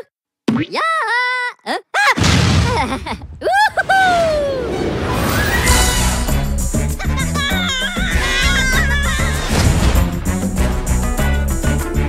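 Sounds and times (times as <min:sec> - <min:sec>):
high-pitched cartoon gibberish voice: 0:00.0 - 0:02.2, 0:07.0 - 0:09.5.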